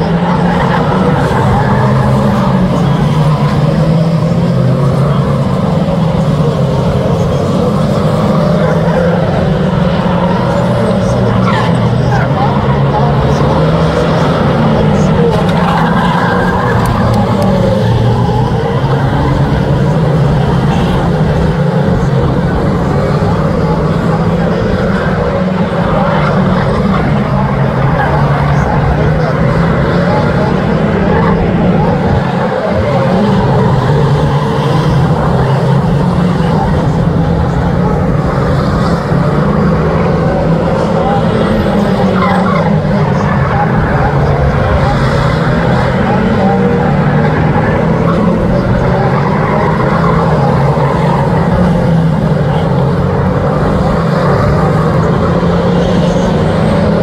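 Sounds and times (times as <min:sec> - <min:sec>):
racing car engines: 0:00.0 - 0:57.0.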